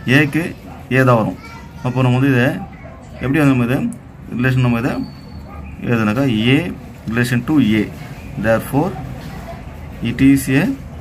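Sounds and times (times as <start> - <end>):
man talking: 0.0 - 2.6, 5.8 - 9.0.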